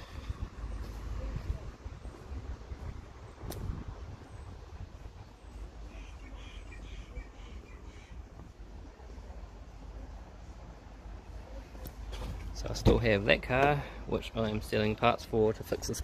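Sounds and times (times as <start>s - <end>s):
low uneven rumble: 0.0s - 16.0s
faint bird chirps: 5.4s - 8.3s.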